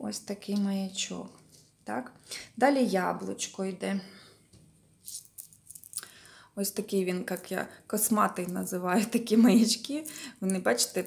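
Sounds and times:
beads and metal charms jingling: 0:05.0 - 0:06.1.

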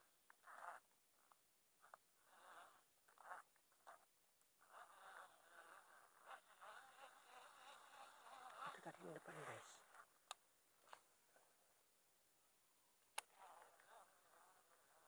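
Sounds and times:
fishing reel being cranked: 0:04.6 - 0:09.9.

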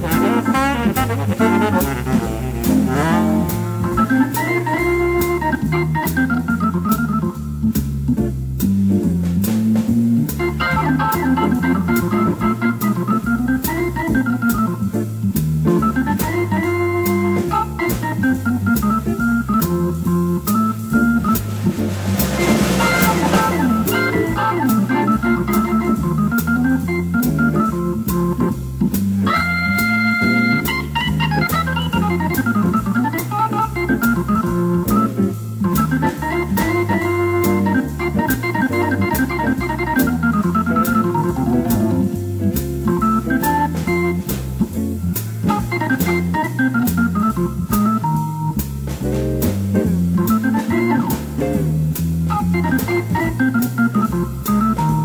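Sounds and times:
drums on cymbals: 0:00.0 - 0:55.0
hammond organ: 0:00.0 - 0:55.0
low walking bass line: 0:00.0 - 0:55.0.

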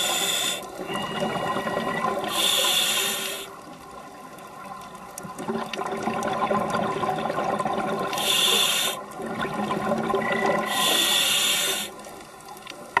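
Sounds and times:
underwater bubbling bursts: 0:00.0 - 0:12.9.

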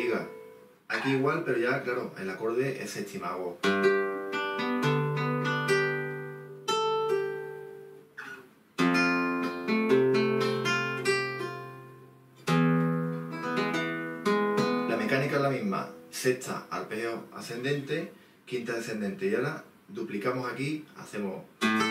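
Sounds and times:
nylon-string guitar arpeggios: 0:00.0 - 0:01.4, 0:03.6 - 0:16.4, 0:21.6 - 0:21.9.

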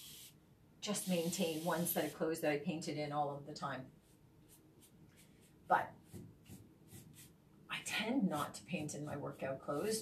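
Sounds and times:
faint paintbrush swishes: 0:04.0 - 0:07.4.

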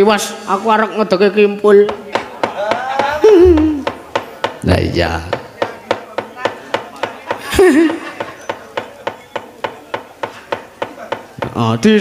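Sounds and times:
sharp rhythmic wooden knocking: 0:01.8 - 0:11.7.

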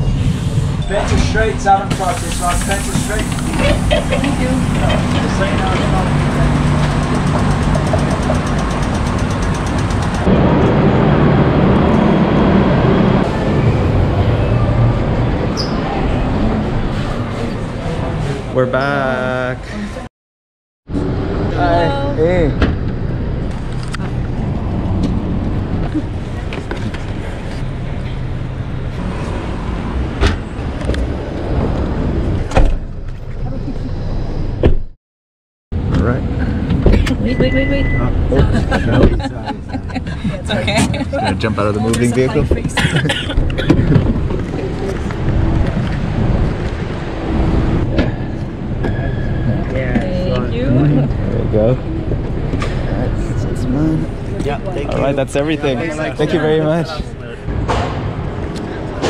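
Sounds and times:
street noise: 0:00.0 - 0:20.1, 0:20.8 - 0:35.0, 0:35.7 - 0:59.0
tram rumbling and rattling: 0:00.0 - 0:20.1, 0:20.9 - 0:34.9, 0:35.8 - 0:59.0.

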